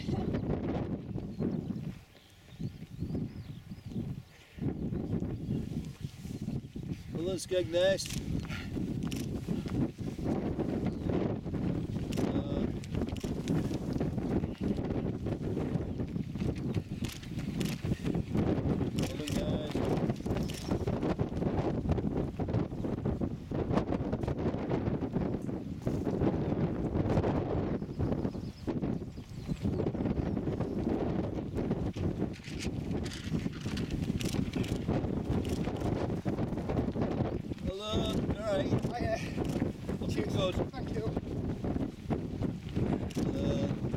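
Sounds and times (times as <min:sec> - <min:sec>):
wind buffeting microphone: 0:00.0 - 0:43.9
runners' footfalls on tarmac: 0:01.1 - 0:03.2, 0:12.8 - 0:22.5, 0:40.8 - 0:43.9.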